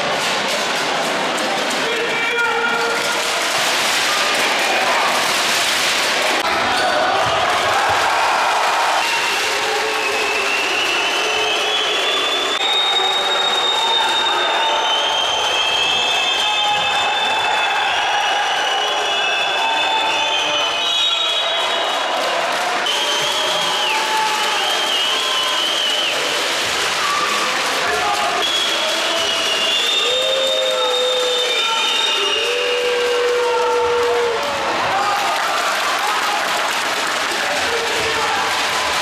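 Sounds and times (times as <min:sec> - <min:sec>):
spectators' voices: 0:00.0 - 0:39.0.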